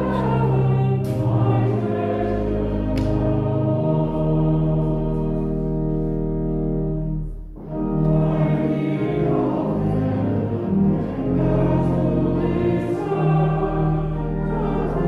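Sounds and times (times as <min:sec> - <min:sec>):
congregation singing a hymn: 0:00.0 - 0:15.0
organ chord: 0:00.0 - 0:15.0.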